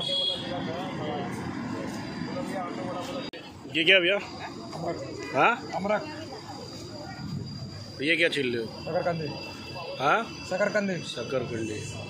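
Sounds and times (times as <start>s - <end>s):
people talking: 0.0s - 12.0s
steady traffic noise: 0.0s - 12.0s.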